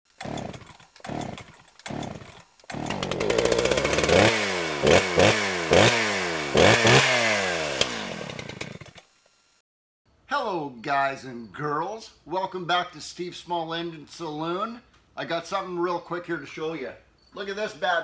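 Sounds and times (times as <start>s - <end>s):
small gas engine revving: 0.1s - 9.6s.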